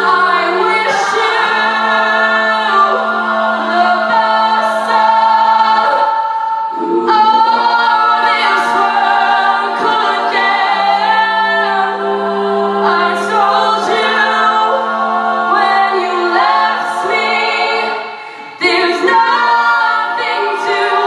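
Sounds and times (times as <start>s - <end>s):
female a cappella group singing: 0.0s - 21.0s.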